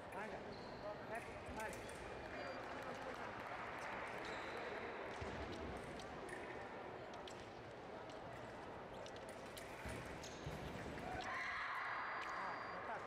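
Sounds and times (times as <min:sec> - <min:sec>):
voices talking in a hall: 0:00.0 - 0:13.0.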